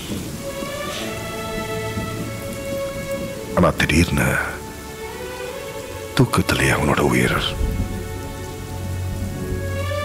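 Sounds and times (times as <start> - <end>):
soft sustained notes: 0.0 - 10.0.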